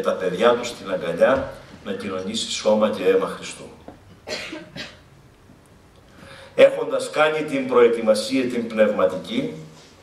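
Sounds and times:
man coughing: 0:04.2 - 0:05.1.

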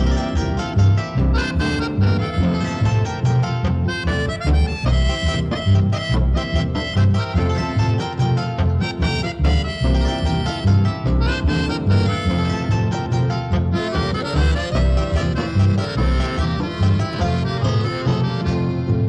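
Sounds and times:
reed-like melody: 0:00.0 - 0:19.0
steady bass beat: 0:00.0 - 0:19.0.

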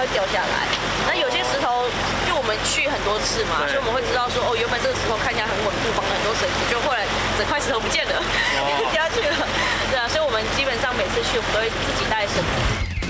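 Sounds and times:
woman talking: 0:00.0 - 0:12.6
low background rumble: 0:00.0 - 0:13.0.

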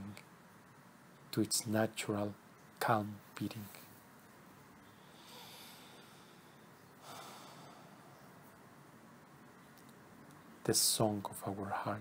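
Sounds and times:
soft breath: 0:04.8 - 0:08.6.

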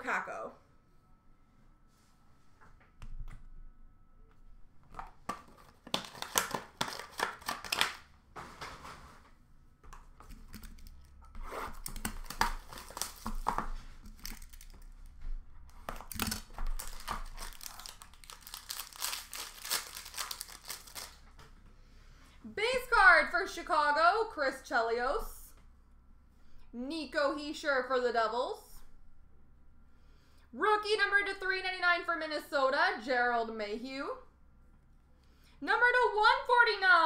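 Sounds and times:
card pack wrappers tearing: 0:05.5 - 0:08.0, 0:10.6 - 0:14.9, 0:15.9 - 0:21.3.

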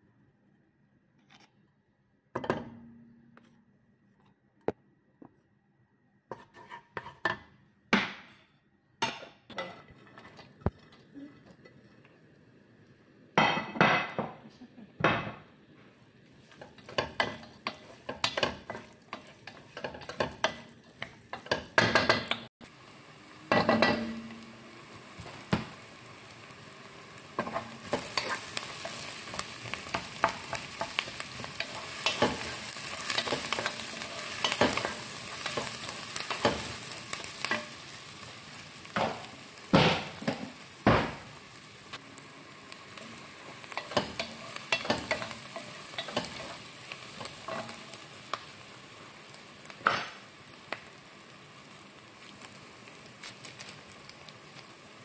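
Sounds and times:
wooden spoon scraping a pan: 0:06.3 - 0:07.3, 0:09.6 - 0:11.4, 0:16.4 - 0:22.3, 0:27.4 - 0:37.8, 0:43.6 - 0:48.0
onions frying in a pan: 0:09.0 - 0:55.0.

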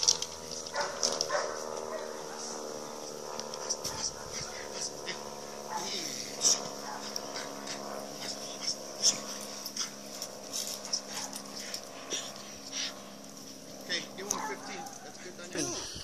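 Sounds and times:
steady hum: 0:00.0 - 0:16.0.

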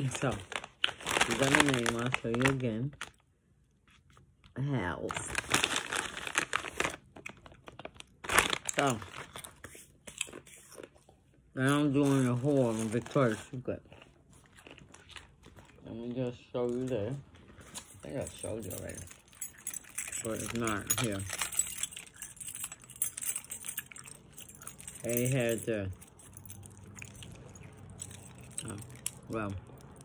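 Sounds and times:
paper packaging crackling: 0:00.0 - 0:03.2, 0:05.1 - 0:09.6, 0:11.9 - 0:13.7
keychain charms jangling: 0:17.7 - 0:30.0.

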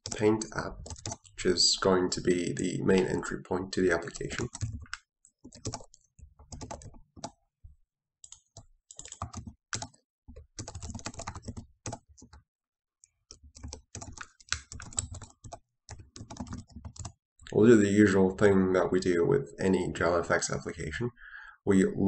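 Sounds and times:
typing on computer keyboard: 0:00.0 - 0:01.4, 0:04.0 - 0:07.4, 0:08.2 - 0:12.4, 0:13.3 - 0:17.2.

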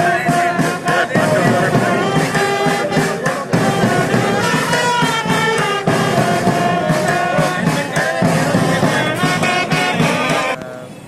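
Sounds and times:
steady drumbeat: 0:00.0 - 0:10.6
band playing a tune: 0:00.0 - 0:10.7.

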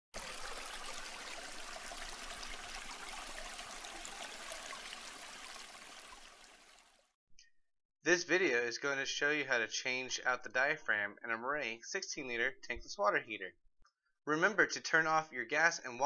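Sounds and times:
rushing water noise: 0:00.2 - 0:07.0.

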